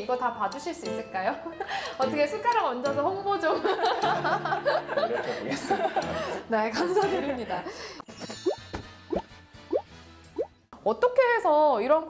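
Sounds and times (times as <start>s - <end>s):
light background music: 0.0s - 12.0s
cartoon bloop pops: 8.4s - 10.5s.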